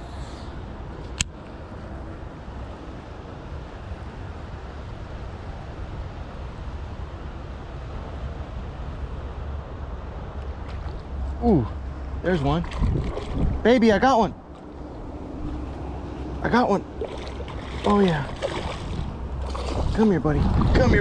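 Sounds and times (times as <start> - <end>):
wind buffeting microphone: 10.6 - 21.0.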